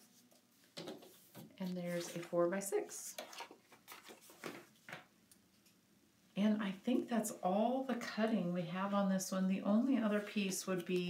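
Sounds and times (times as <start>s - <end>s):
paper rustling: 0.8s - 5.1s.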